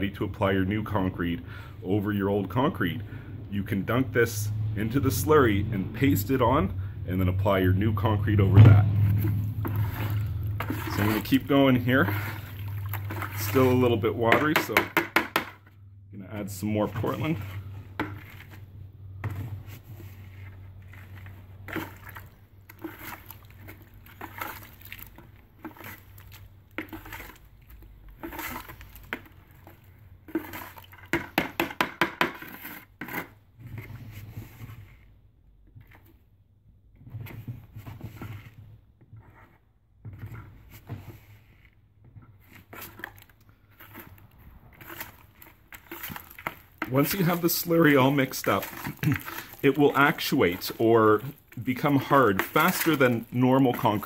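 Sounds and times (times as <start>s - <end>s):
trowel scraping plastic bucket: 7.5s - 36.2s, 37.0s - 54.0s.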